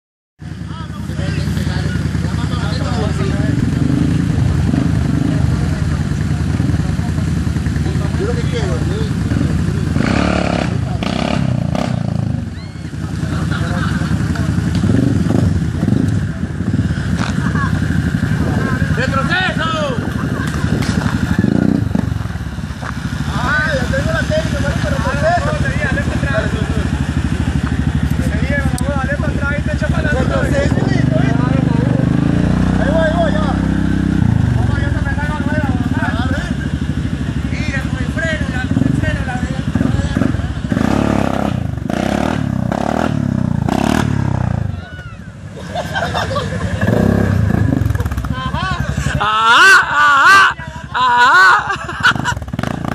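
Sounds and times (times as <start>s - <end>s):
atv engine revving: 0.4s - 52.9s
people calling out: 12.4s - 13.8s, 44.5s - 46.0s, 48.0s - 51.8s.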